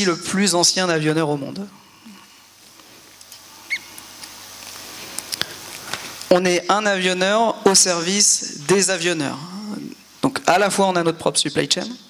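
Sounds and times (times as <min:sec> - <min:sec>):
steady hiss: 0:00.0 - 0:12.0
short high squeak: 0:03.7 - 0:03.9.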